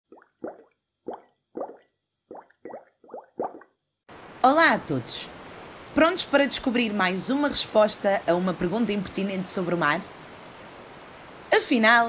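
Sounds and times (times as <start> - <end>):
water plop bloops: 0.0 - 4.0.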